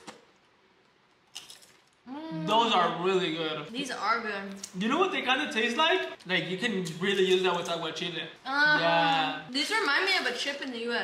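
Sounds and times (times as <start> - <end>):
tortilla chip crunch: 1.3 - 2.0.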